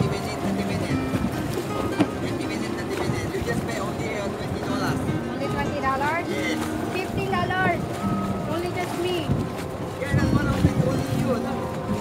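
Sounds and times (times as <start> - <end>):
motorboats rumbling: 0.0 - 12.0
water: 0.0 - 12.0.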